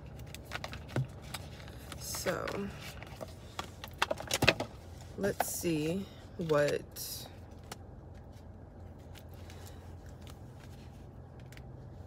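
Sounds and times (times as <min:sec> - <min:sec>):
cards rustling: 0:00.0 - 0:05.7, 0:06.4 - 0:12.0.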